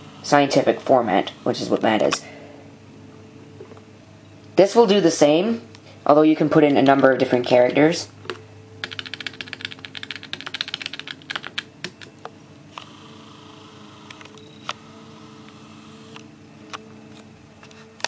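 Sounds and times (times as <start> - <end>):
calculator keys pressed: 8.8 - 12.1.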